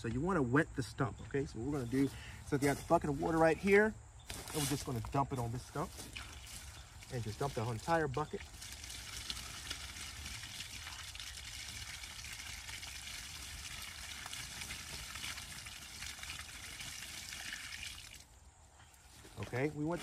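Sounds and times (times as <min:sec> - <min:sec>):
water splashing onto stump: 0:05.8 - 0:18.3.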